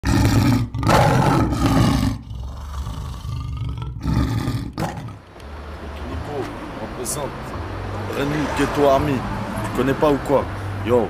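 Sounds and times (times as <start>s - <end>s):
lion roaring: 0.0s - 5.2s.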